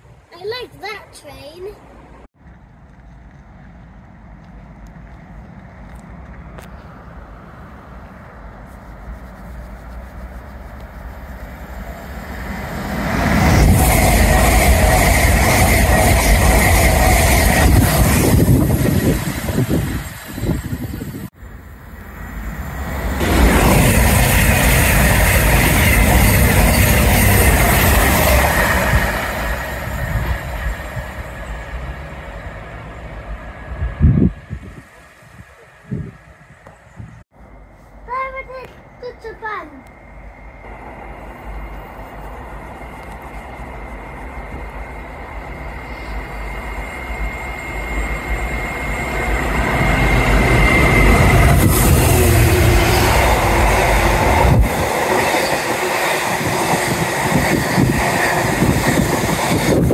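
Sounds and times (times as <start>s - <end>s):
trains passing at speed: 0.0s - 59.9s.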